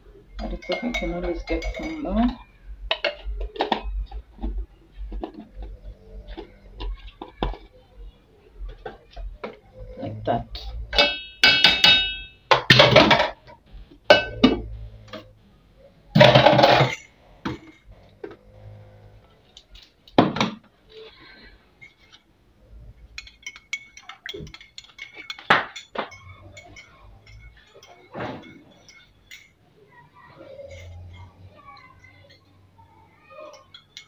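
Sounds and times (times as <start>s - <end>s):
metal kitchenware clanking: 0.4s - 7.6s, 9.4s - 15.3s, 16.1s - 19.1s, 22.9s - 32.7s, 33.3s - 34.0s.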